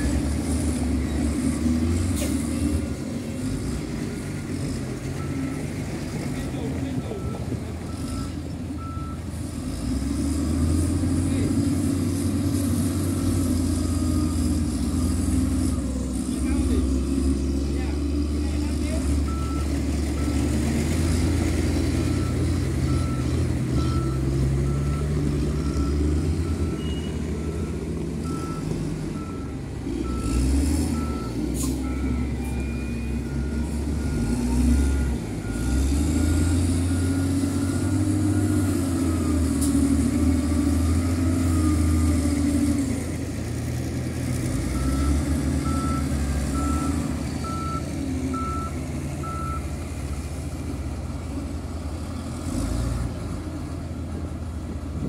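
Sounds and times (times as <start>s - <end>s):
diesel wheel loader engines: 0.0s - 55.0s.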